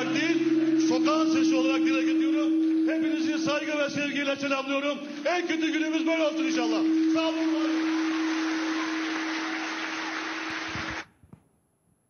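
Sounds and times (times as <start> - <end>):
steady low hum: 0.0 - 11.0
audience applauding: 6.6 - 11.1.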